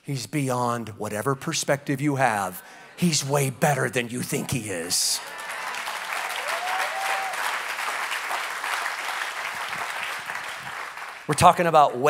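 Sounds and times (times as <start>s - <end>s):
congregation applauding: 4.5s - 11.8s.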